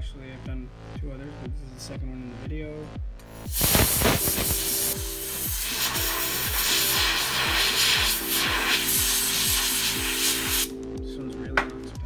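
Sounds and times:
electronic music with steady beat: 0:00.4 - 0:12.0
brush scrubbing circuit board: 0:03.5 - 0:10.7.

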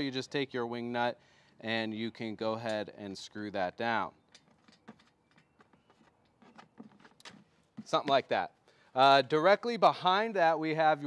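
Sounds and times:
wing nut clicks and scrapes: 0:04.3 - 0:08.0.

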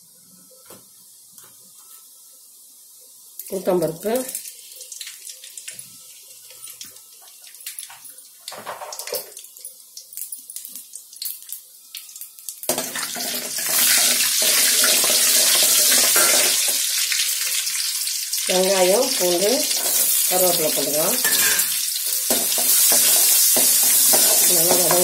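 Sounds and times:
oil sizzling: 0:01.0 - 0:25.0
spices popping in oil: 0:03.4 - 0:25.0.

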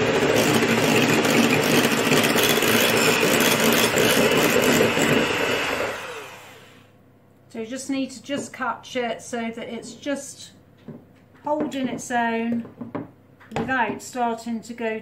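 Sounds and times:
electric hand mixer whipping cream: 0:00.0 - 0:06.9.

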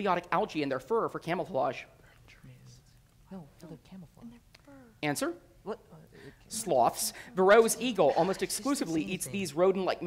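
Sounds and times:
people whispering: 0:02.0 - 0:05.0, 0:05.9 - 0:09.8.

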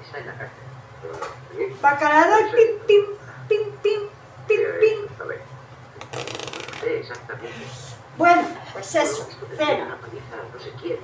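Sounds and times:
fast rasping rattle: 0:06.0 - 0:06.9.

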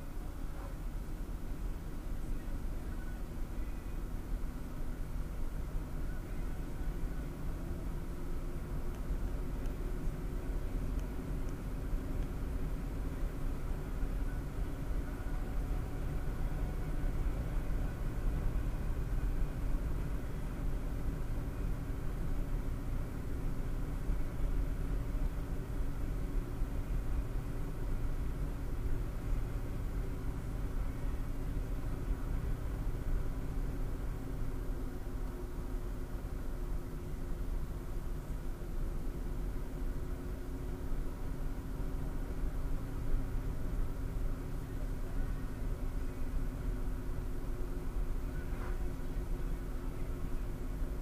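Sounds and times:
low engine hum: 0:00.0 - 0:51.0
road and tyre noise: 0:00.0 - 0:51.0.

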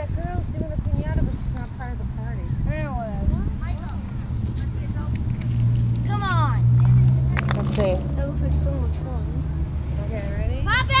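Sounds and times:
vehicle engine rumble: 0:00.0 - 0:11.0
child shouting: 0:10.6 - 0:11.0.

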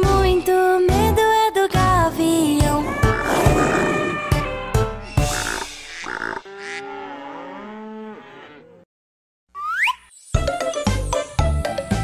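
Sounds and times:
children's song: 0:00.0 - 0:03.1
cartoon cow moo: 0:05.3 - 0:08.9.

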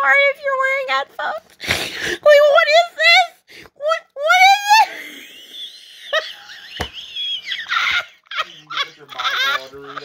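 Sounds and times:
woman laughing: 0:04.2 - 0:10.0.

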